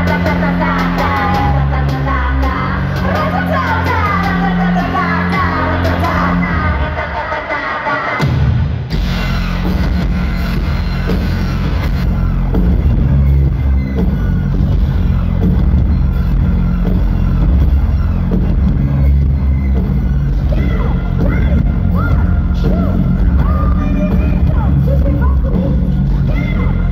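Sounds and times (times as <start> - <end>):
loud live band music: 0.0 - 26.9.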